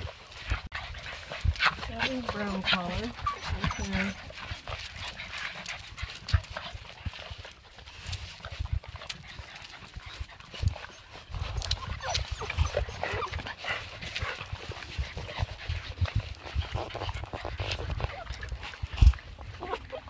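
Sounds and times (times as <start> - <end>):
paws and claws tapping on pavement: 0.0 - 20.0
puppies squeaking: 1.6 - 4.4, 10.7 - 13.6, 19.5 - 20.0.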